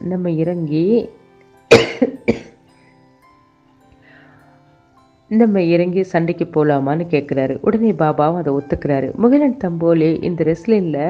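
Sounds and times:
faint background music: 0:00.0 - 0:11.0
person coughing: 0:01.7 - 0:02.6.

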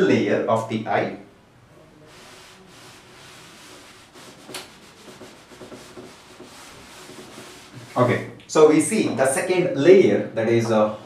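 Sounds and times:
cloth rubbing on a chalkboard: 0:02.0 - 0:08.2.

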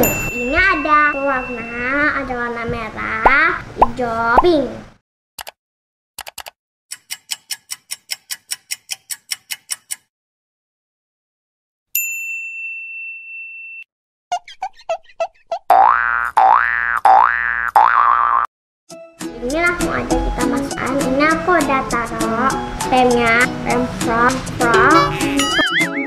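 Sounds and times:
electronic ding tone: 0:00.0 - 0:01.9, 0:24.7 - 0:26.0
cartoon ticks: 0:06.2 - 0:10.1, 0:24.7 - 0:25.8
rising boing sweeps: 0:24.6 - 0:25.8.

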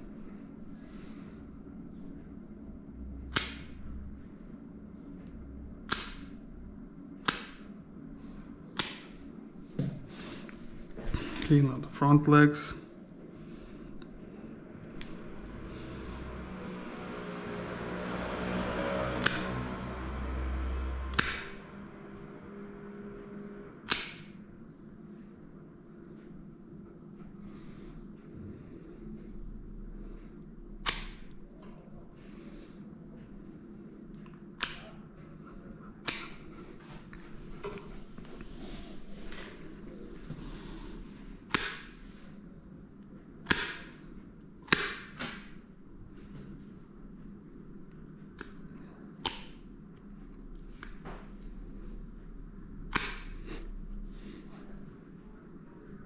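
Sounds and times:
nail clipper clicks: 0:05.9 - 0:06.3, 0:19.2 - 0:19.5, 0:21.1 - 0:21.5, 0:23.9 - 0:24.3, 0:30.8 - 0:31.2, 0:34.6 - 0:34.8, 0:36.1 - 0:36.4, 0:52.9 - 0:53.3.

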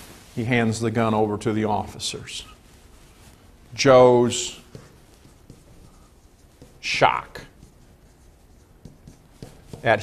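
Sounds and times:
marker writing on whiteboard: 0:04.1 - 0:10.0
man speaking: 0:06.8 - 0:07.5.

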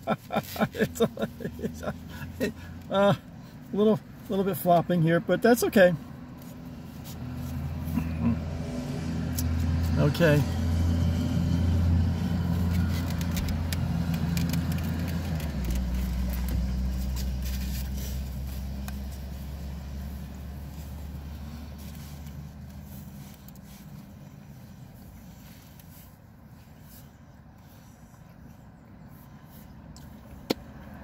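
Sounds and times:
vehicle engine running: 0:00.2 - 0:31.0
rustling: 0:12.2 - 0:30.8.

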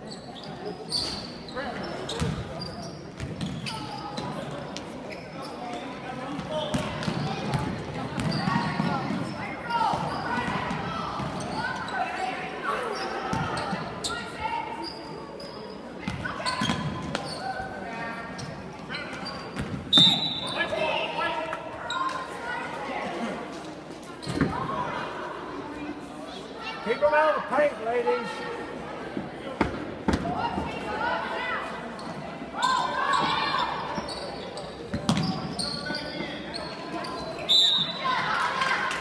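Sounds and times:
people talking and calling out: 0:00.0 - 0:39.0.

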